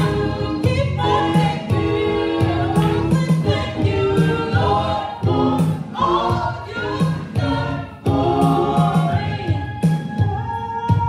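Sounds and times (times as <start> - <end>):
low bass notes: 0.0 - 9.5
gospel choir singing: 0.0 - 11.0.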